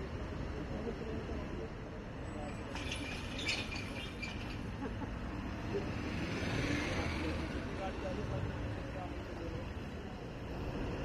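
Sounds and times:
cars idling in traffic: 0:00.0 - 0:11.0.

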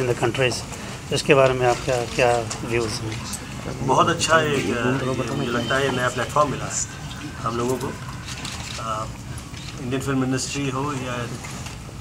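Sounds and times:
man speaking: 0:00.0 - 0:08.1, 0:08.8 - 0:09.2
steady low hum: 0:00.0 - 0:12.0.

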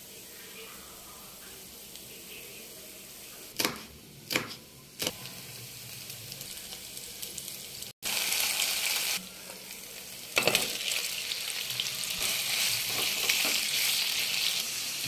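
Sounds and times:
oil sizzling in a frying pan: 0:05.0 - 0:15.0.

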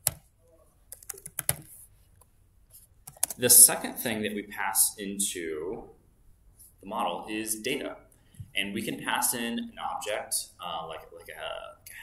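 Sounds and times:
computer keyboard keystrokes: 0:00.9 - 0:01.7, 0:03.0 - 0:03.4.

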